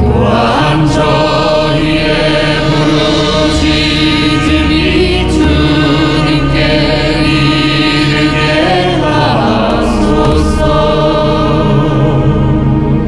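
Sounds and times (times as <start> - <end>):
traditional instrument ensemble: 0.0 - 13.0
voices chanting a litany: 0.0 - 13.0.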